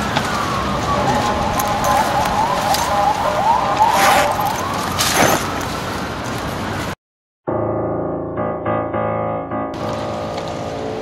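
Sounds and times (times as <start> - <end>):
siren yelping: 0.0 - 5.8.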